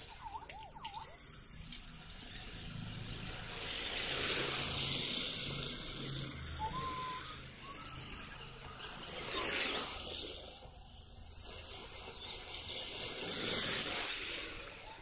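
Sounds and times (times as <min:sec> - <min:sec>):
tyres scrubbing on asphalt: 0:09.0 - 0:15.0.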